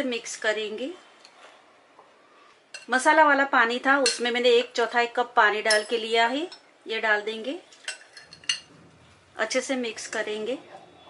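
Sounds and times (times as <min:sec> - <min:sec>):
spoon clinking mixing bowl: 0:04.0 - 0:04.3, 0:05.7 - 0:06.6.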